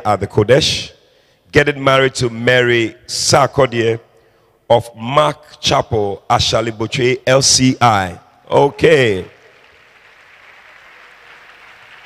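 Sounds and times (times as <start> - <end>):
faint distant applause: 8.5 - 12.0.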